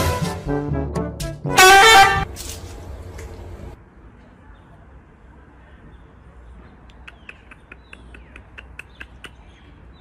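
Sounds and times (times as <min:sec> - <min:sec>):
brass band music: 0:00.0 - 0:02.3
horn honk: 0:01.4 - 0:02.3.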